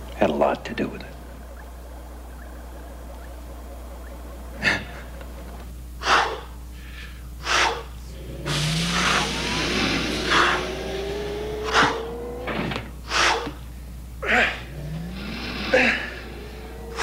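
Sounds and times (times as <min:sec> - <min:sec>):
whirring rising in pitch: 0:00.0 - 0:06.0, 0:08.0 - 0:17.0
man breathing and grunting: 0:06.0 - 0:12.4, 0:13.0 - 0:17.0.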